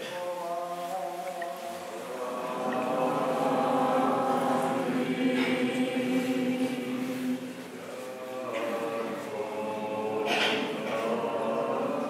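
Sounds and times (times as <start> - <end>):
choir chanting: 0.0 - 12.0.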